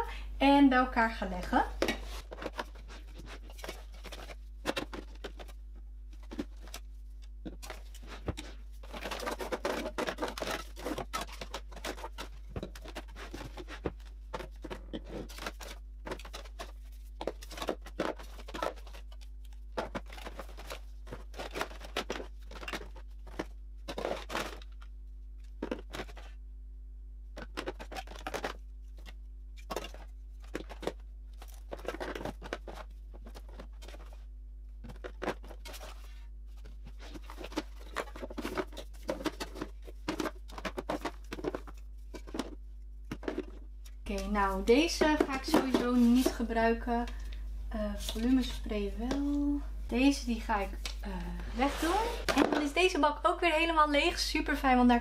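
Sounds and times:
plastic bottles clicking and knocking: 1.8 - 26.4, 27.3 - 49.4, 51.8 - 53.0.

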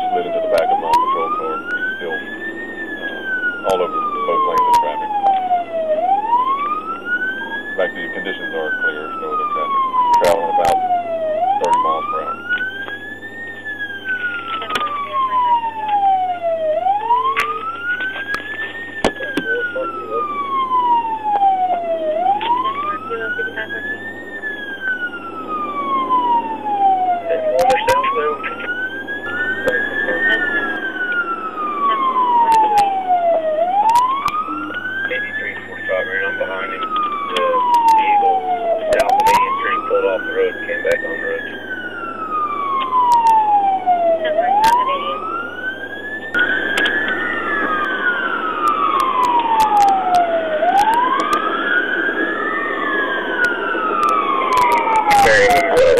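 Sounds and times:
police siren wailing: 0.0 - 55.9.

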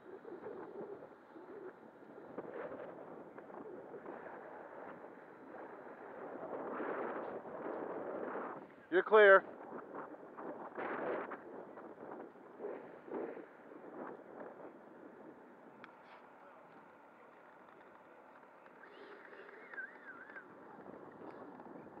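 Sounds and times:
warbling chirp: 18.8 - 20.5.

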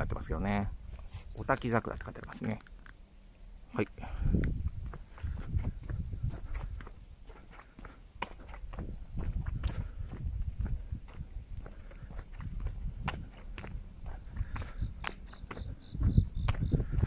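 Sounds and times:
footsteps on paved path: 0.0 - 17.0.

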